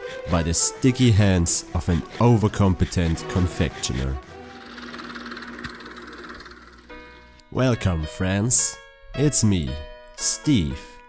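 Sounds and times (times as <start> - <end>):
held musical notes: 0.0 - 11.0.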